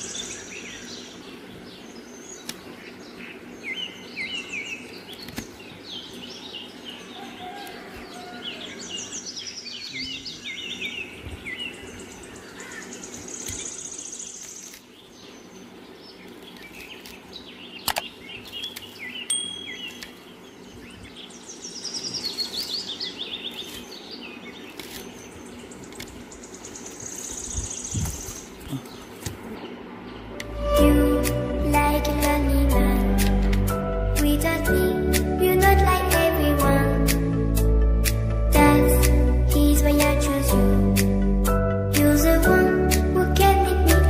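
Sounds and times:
birds chirping: 0:00.0 - 0:35.0.

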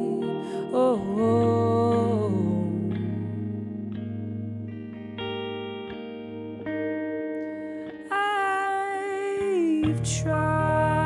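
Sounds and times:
electric guitar with delay: 0:00.0 - 0:11.0.

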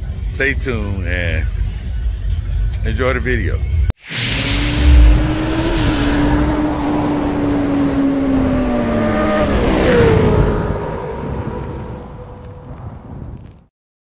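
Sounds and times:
low hit: 0:04.0 - 0:09.2
whoosh: 0:04.0 - 0:11.0
high-revving motorcycle engine: 0:04.5 - 0:11.0.

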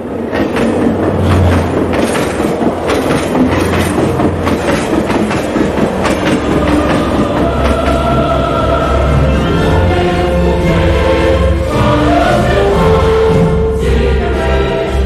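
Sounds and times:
dense rumble with clattering hits: 0:00.2 - 0:08.5
sustained musical tones: 0:00.2 - 0:15.0.

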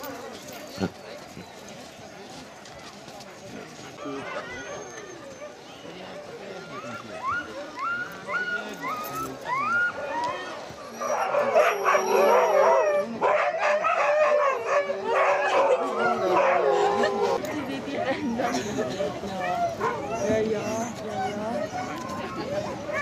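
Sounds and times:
dogs whining and yipping: 0:06.7 - 0:10.2, 0:10.8 - 0:13.2, 0:19.4 - 0:23.0
dogs howling and barking: 0:07.2 - 0:17.4.

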